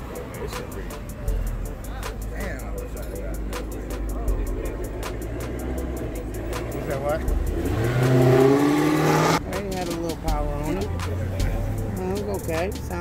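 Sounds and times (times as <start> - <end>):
car engine revving: 0.0 - 13.0
music with steady beat: 0.0 - 13.0
voices: 0.0 - 13.0.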